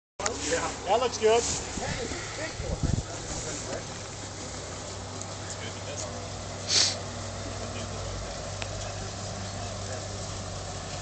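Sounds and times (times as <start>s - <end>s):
background hiss: 0.2s - 11.0s
car engine idling: 0.2s - 11.0s.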